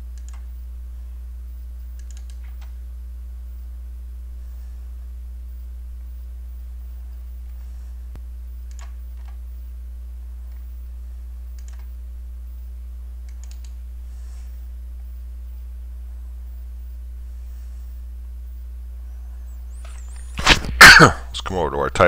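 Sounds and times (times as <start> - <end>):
low electrical hum: 0.0 - 22.0
faint mouse clicks: 2.0 - 2.8, 8.1 - 9.4, 11.5 - 11.9, 13.2 - 13.8
sudden vocal burst: 20.4 - 21.3.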